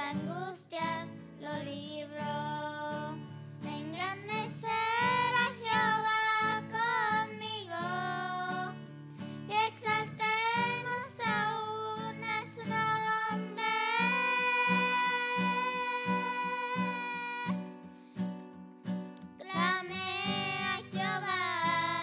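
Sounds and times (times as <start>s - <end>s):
girls singing: 0.0s - 8.8s, 9.5s - 17.7s, 19.4s - 22.0s
acoustic guitar strumming: 0.0s - 22.0s.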